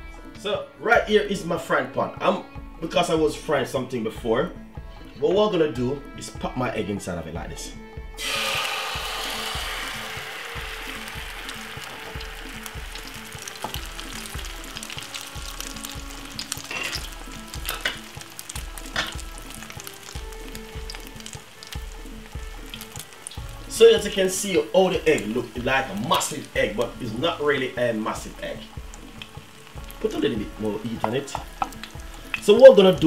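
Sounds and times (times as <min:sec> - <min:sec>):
egg sizzling in hot oil: 0:08.2 - 0:33.0
oil crackles: 0:08.2 - 0:33.0.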